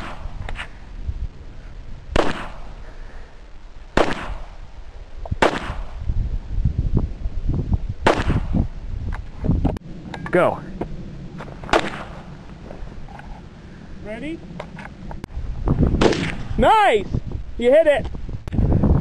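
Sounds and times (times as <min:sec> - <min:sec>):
gunshots: 0:00.0 - 0:00.6, 0:02.1 - 0:02.8, 0:04.0 - 0:04.6, 0:05.4 - 0:06.0, 0:08.0 - 0:08.6, 0:11.7 - 0:12.3, 0:16.0 - 0:16.6.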